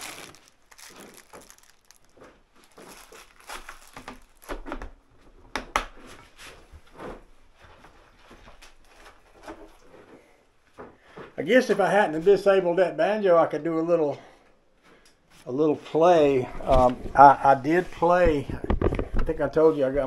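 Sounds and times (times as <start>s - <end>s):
small parts clattering: 0.0s - 4.6s
packaging rustling: 0.0s - 5.0s.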